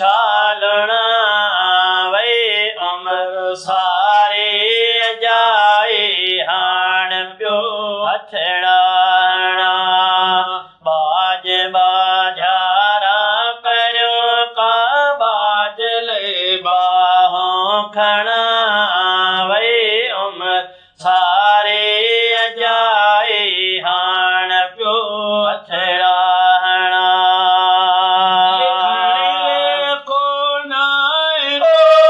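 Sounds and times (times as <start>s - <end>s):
two men chanting: 0.0s - 32.0s.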